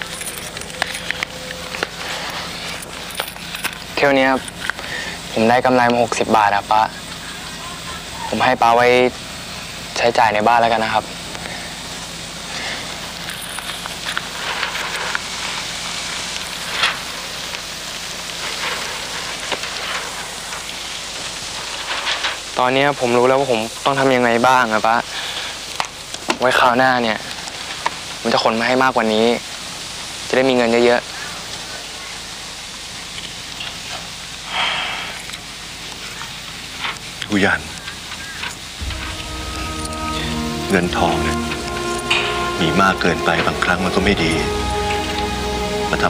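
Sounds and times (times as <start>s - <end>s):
steady hissing noise: 0.0s - 46.0s.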